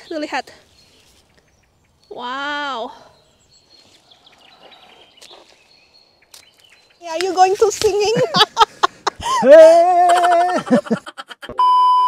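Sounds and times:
electronic beep tone: 11.6 - 12.0.

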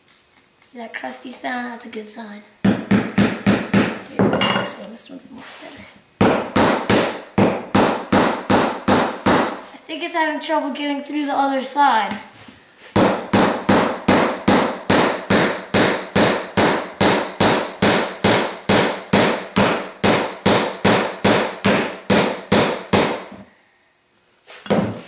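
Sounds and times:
hammer striking nail: 2.6 - 4.0, 6.2 - 9.6, 13.0 - 23.4.

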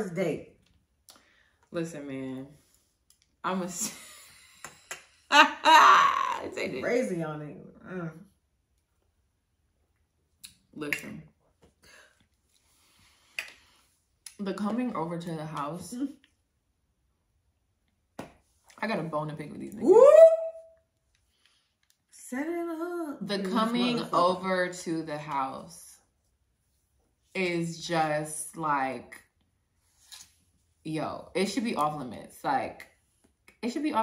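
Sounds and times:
woman laughing loudly: 5.3 - 6.5.

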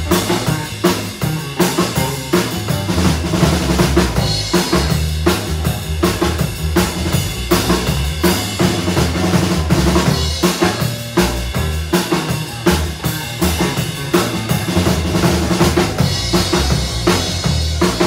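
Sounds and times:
drum kit beat: 0.0 - 18.0
electric bass notes: 0.0 - 18.0
live band playing: 0.0 - 18.0.

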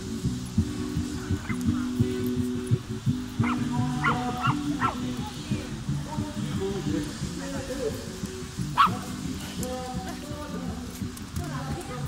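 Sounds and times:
music with low held notes: 0.0 - 12.0
small dog yipping: 3.4 - 5.1, 8.8 - 9.1.

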